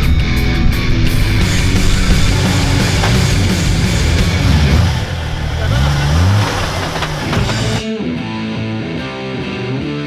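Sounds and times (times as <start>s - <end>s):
buggy engine revving: 0.2s - 7.8s
background voices: 1.2s - 7.8s.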